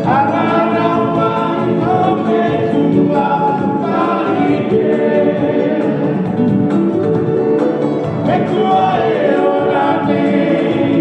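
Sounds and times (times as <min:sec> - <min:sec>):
group singing in harmony: 0:00.0 - 0:11.0.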